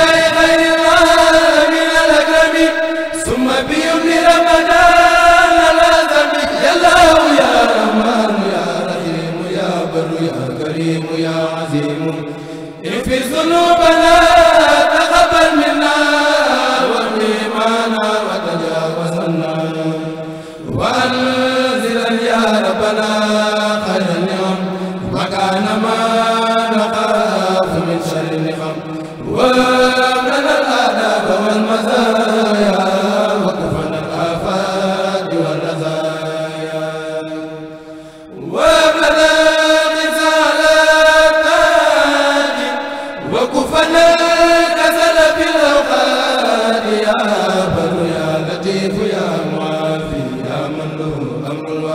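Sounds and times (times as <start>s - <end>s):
men chanting into microphones: 0.0s - 51.9s.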